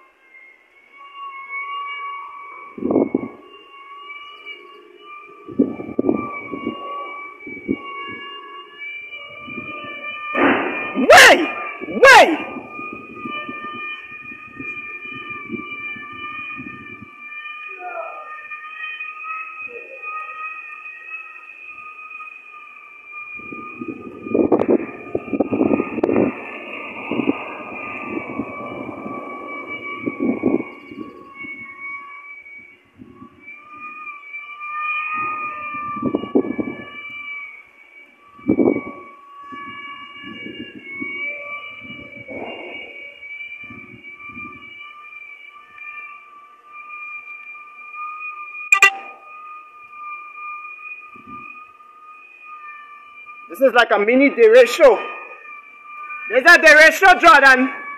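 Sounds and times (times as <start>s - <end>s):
high whistling tone: 0.0s - 57.9s
wind gusting on microphone: 2.7s - 3.5s, 5.4s - 8.4s, 9.1s - 18.2s, 23.3s - 32.0s, 32.6s - 34.0s, 35.1s - 37.3s, 38.2s - 44.8s, 51.2s - 51.5s.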